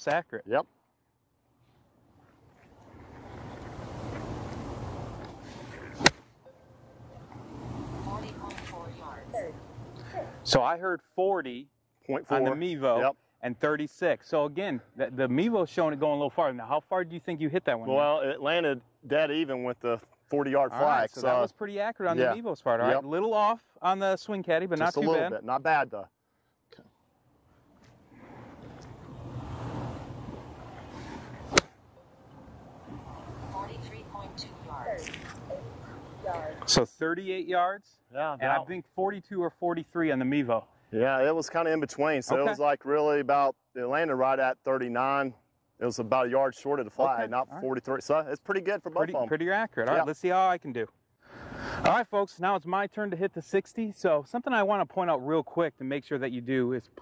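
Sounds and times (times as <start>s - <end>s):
outdoor background noise: 0.0s - 57.0s
low rushing background noise: 1.8s - 10.6s, 28.0s - 37.1s
golf club striking ball: 5.2s - 6.3s, 30.3s - 32.1s.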